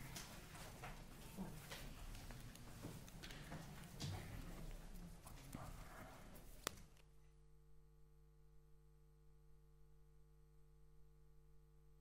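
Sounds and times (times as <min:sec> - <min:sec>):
footsteps of hard-soled shoes: 0:00.0 - 0:06.8.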